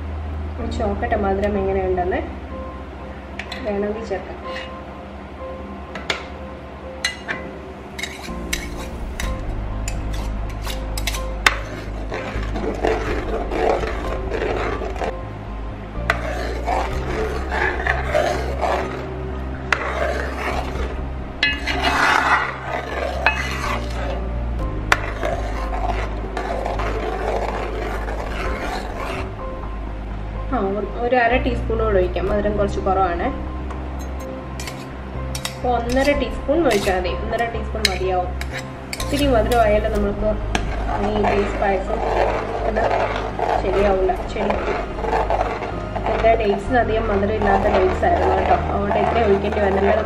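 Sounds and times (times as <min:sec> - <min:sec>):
spoon scraping metal pan: 0:04.5 - 0:04.8, 0:07.0 - 0:15.2, 0:16.0 - 0:29.4, 0:34.0 - 0:50.0.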